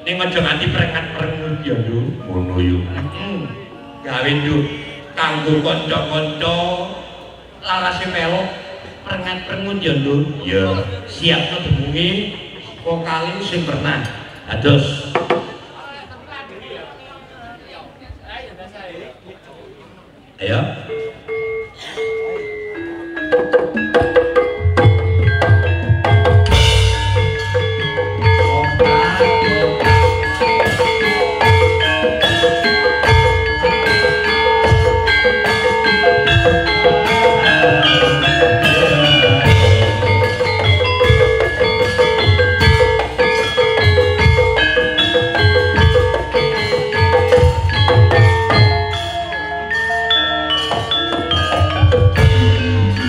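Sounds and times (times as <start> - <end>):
metallophones ringing a melody: 0.0 - 15.7, 20.4 - 53.0.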